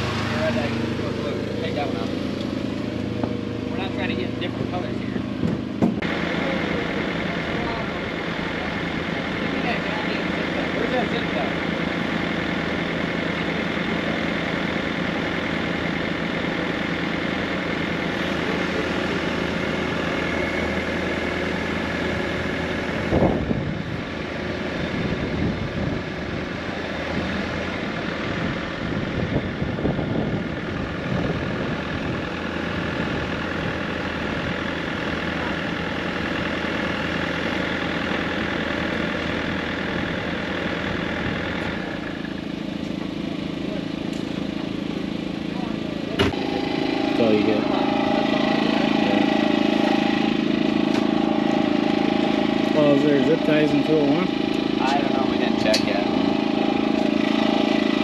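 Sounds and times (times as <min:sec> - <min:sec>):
excavator diesel engine running: 0:00.0 - 0:58.0.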